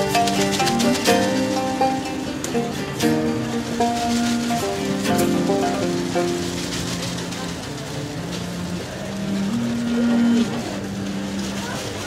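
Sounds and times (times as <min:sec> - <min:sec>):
acoustic guitar: 0:00.0 - 0:12.0
two-string lute: 0:00.0 - 0:12.0.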